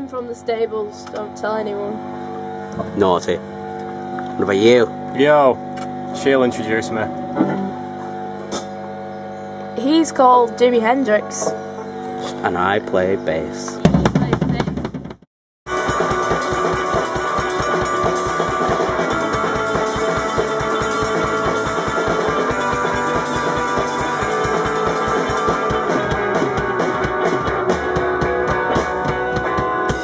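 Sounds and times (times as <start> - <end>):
drum strokes: 13.7 - 30.0
rock music: 15.7 - 30.0.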